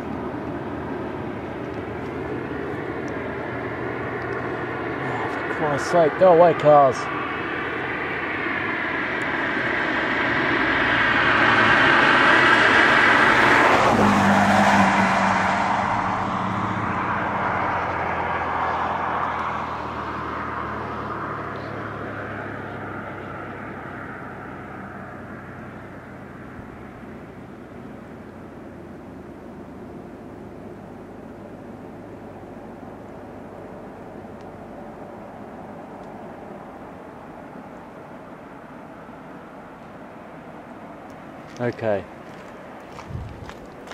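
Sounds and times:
car passing by: 0:01.2 - 0:27.3, 0:34.9 - 0:43.9.

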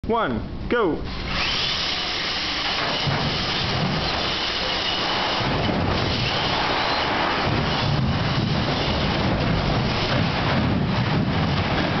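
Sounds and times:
robot electric motors running: 0:01.1 - 0:12.0.

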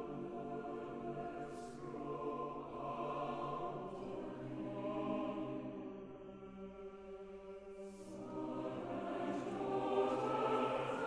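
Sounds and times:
mixed chorus singing soft chords: 0:00.0 - 0:11.0.

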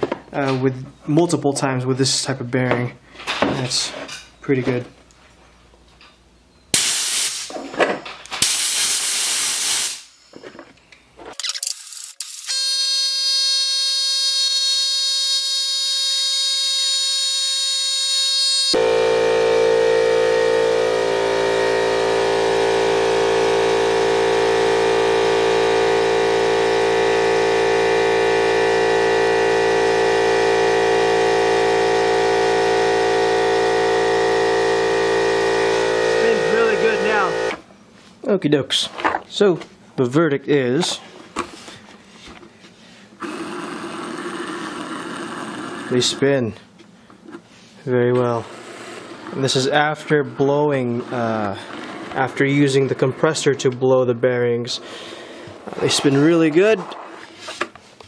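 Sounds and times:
compressed air blasts hissing: 0:06.8 - 0:07.5, 0:08.4 - 0:10.1
wheel spinning with high whine: 0:12.0 - 0:37.6, 0:43.2 - 0:46.3, 0:48.3 - 0:53.8
loud steady drone: 0:18.6 - 0:37.6.

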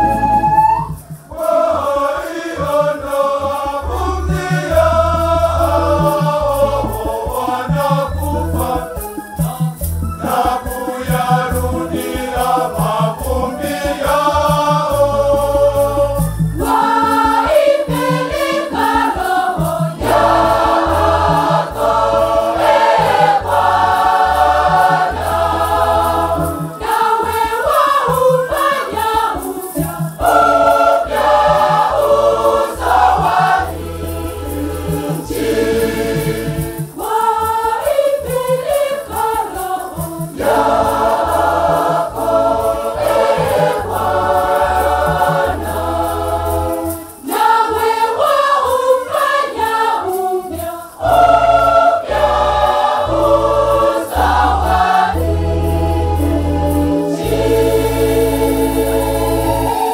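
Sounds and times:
choir singing a hymn: 0:00.0 - 0:59.9.

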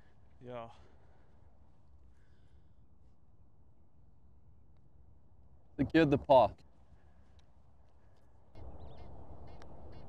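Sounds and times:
birds calling: 0:07.9 - 0:10.0.

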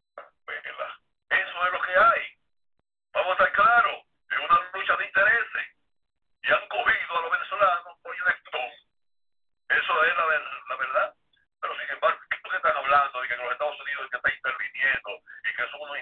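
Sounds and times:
speech over telephone line: 0:00.2 - 0:02.5, 0:03.1 - 0:05.8, 0:06.4 - 0:09.0, 0:09.7 - 0:16.0.

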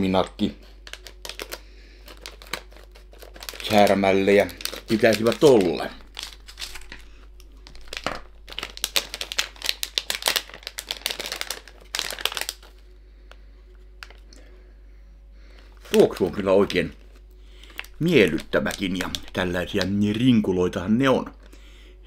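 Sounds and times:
plastic candy bag crinkling: 0:00.0 - 0:14.4, 0:15.5 - 0:20.4.

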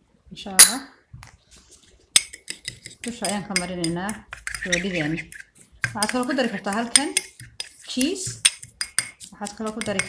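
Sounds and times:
fork scraping glass bowl: 0:02.2 - 0:10.0
person talking: 0:03.0 - 0:05.3, 0:05.9 - 0:08.4, 0:09.3 - 0:10.0.

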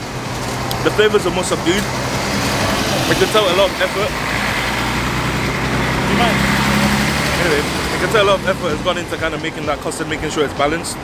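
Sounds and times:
street noise: 0:00.0 - 0:11.0
vehicle motor humming: 0:00.0 - 0:11.0.

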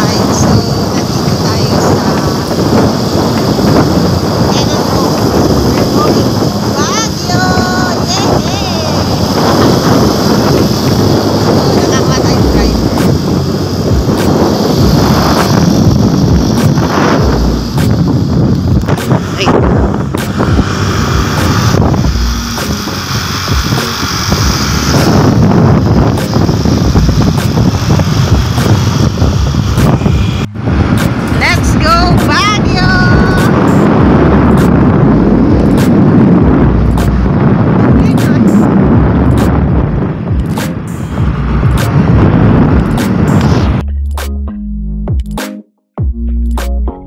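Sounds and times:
wind buffeting microphone: 0:00.0 - 0:44.0
road and engine noise: 0:00.0 - 0:45.4.

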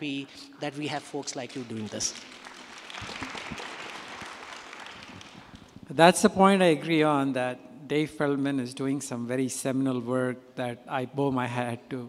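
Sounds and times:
audience applause: 0:01.5 - 0:05.9.

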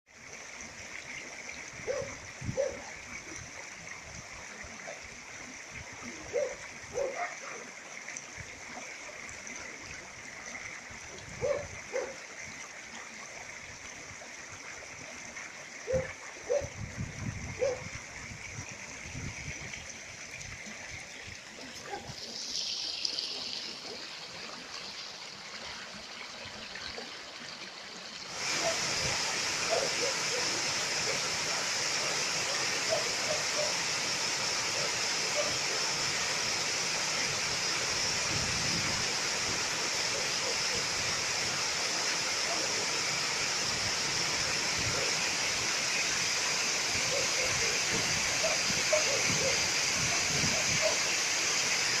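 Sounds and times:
water rushing over weir: 0:00.1 - 0:52.0.

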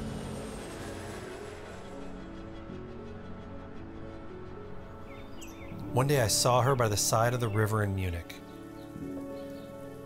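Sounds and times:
jet airliner passing overhead: 0:00.0 - 0:06.8.

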